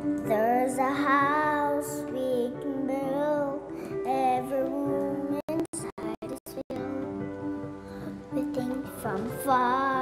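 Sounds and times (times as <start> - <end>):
child singing slowly: 0.2 - 7.2, 8.3 - 10.0.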